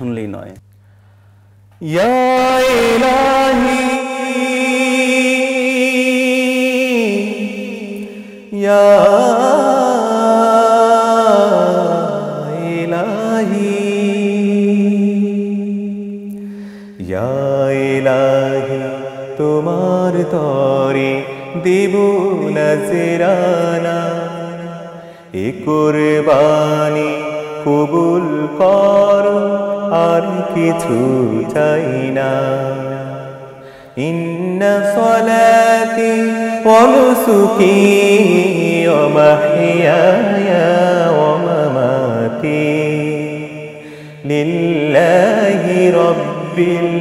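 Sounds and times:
man singing: 1.7 - 47.0.

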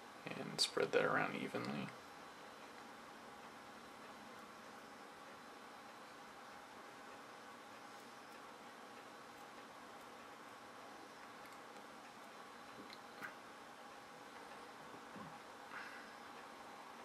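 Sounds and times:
steady hiss: 0.0 - 17.0.

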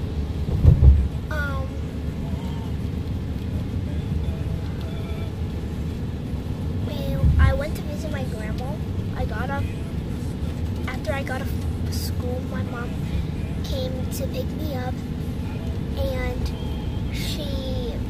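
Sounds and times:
car road rumble: 0.0 - 18.0
low bump: 0.4 - 1.3.

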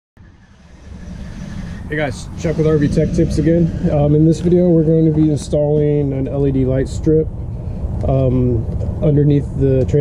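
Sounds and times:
low outdoor rumble: 0.2 - 10.0.

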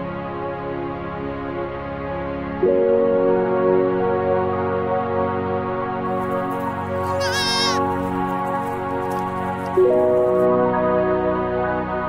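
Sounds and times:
calm background music: 0.0 - 12.0
goat kid bleating: 7.0 - 8.0.

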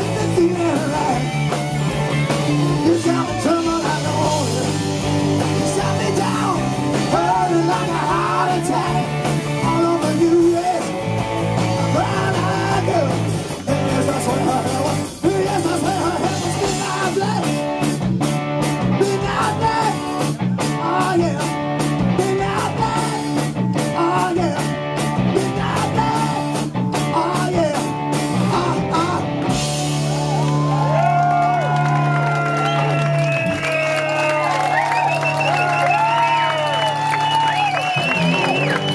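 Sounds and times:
live rock band playing: 0.0 - 38.9.

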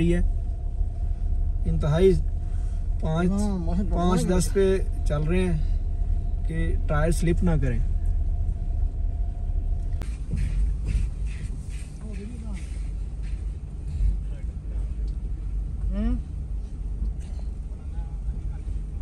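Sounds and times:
car engine and tyres rumbling: 0.0 - 19.0.

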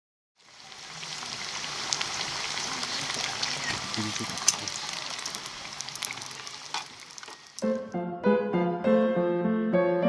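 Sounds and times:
meat sizzling in hot oil: 0.4 - 7.7
crackling pops: 3.1 - 7.9.

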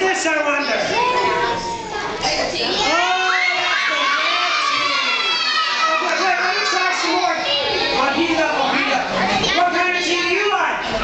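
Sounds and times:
children shouting: 0.5 - 11.0.

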